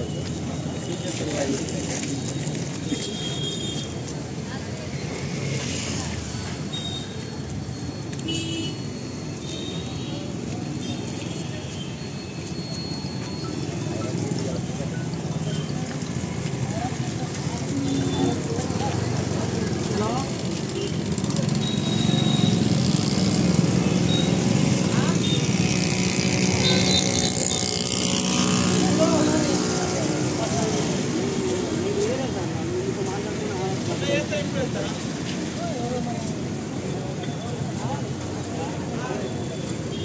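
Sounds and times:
men's voices chattering: 0:00.0 - 0:07.7, 0:09.8 - 0:40.0.

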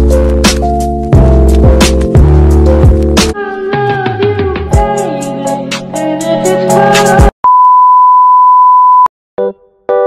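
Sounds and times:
background music with a beat: 0:00.0 - 0:07.3.

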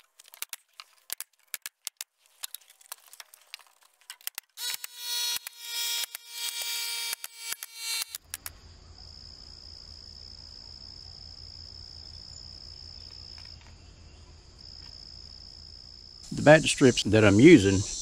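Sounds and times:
small clicks and rattles: 0:00.0 - 0:04.6
power tool motor whine: 0:04.6 - 0:08.2
high insect trill: 0:04.6 - 0:18.0.

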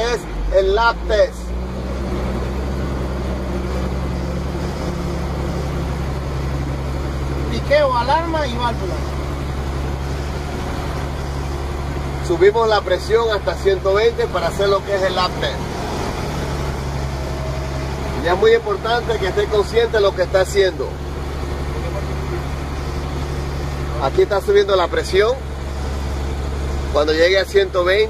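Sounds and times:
truck engine idling: 0:00.0 - 0:28.0
air compressor building pressure: 0:01.1 - 0:28.0.

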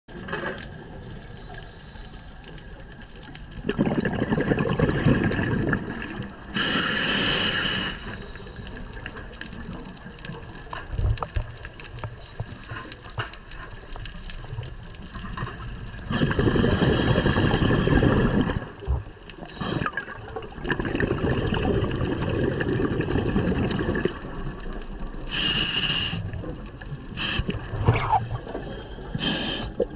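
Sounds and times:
exhaled bubbles underwater: 0:02.9 - 0:11.2, 0:14.4 - 0:29.9
regulator inhaling hiss: 0:06.5 - 0:08.6, 0:25.3 - 0:26.4, 0:27.2 - 0:27.6, 0:28.4 - 0:29.9.

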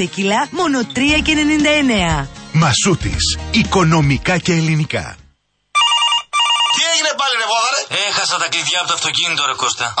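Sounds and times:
man's voice: 0:02.5 - 0:05.3
telephone ringing: 0:05.8 - 0:07.4.

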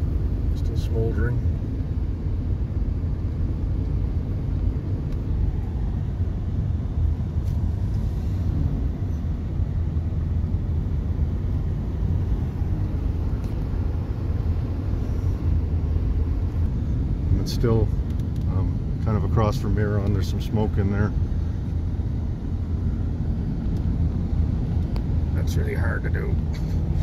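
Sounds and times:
road and engine rumble: 0:00.0 - 0:27.0.

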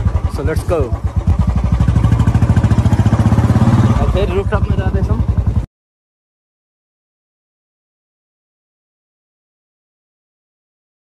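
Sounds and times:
motorcycle engine running: 0:00.0 - 0:05.7.

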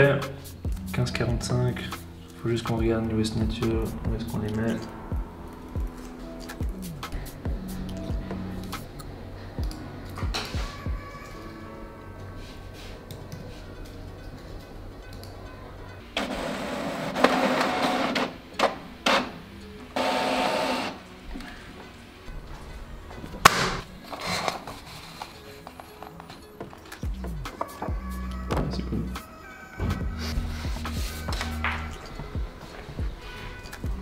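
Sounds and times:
background music: 0:00.0 - 0:34.0
printer running: 0:16.2 - 0:19.4, 0:20.0 - 0:21.0.

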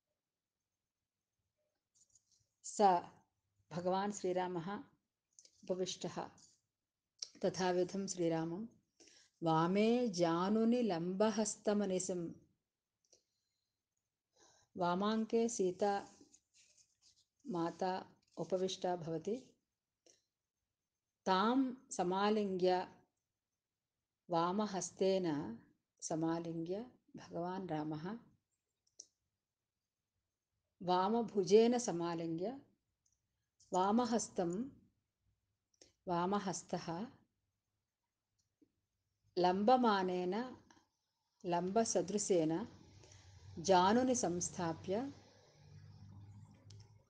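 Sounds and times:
woman speaking: 0:02.7 - 0:03.1, 0:03.7 - 0:04.9, 0:05.6 - 0:06.4, 0:07.2 - 0:08.7, 0:09.4 - 0:12.3, 0:14.8 - 0:16.2, 0:17.5 - 0:19.5, 0:21.3 - 0:22.9, 0:24.3 - 0:28.2, 0:30.8 - 0:32.6, 0:33.8 - 0:34.7, 0:36.1 - 0:37.1, 0:39.4 - 0:40.6, 0:41.5 - 0:42.8, 0:43.6 - 0:45.2.

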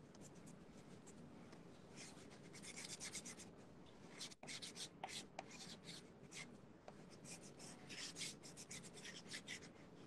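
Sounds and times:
pencil scratching on paper: 0:02.0 - 0:03.5, 0:04.1 - 0:09.7.

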